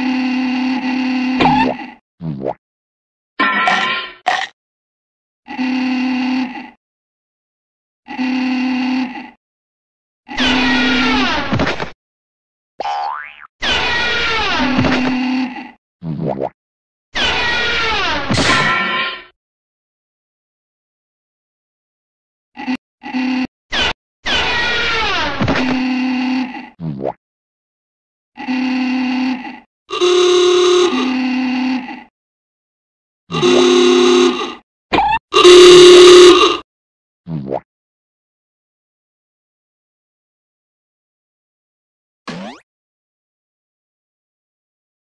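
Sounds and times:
buzzy cartoon voice tones: 0:10.3 - 0:11.5, 0:24.3 - 0:26.8.

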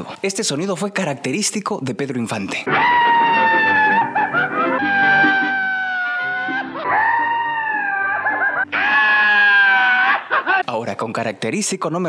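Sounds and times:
man's long high cry: 0:02.8 - 0:10.6.

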